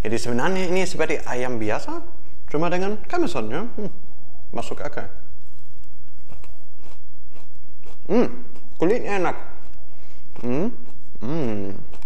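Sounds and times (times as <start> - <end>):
steady low hum: 0.0 - 12.0
person chewing crispy food: 5.8 - 12.0.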